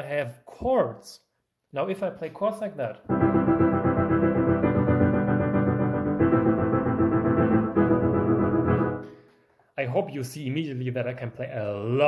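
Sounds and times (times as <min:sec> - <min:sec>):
piano playing fast chords: 0:03.1 - 0:09.2.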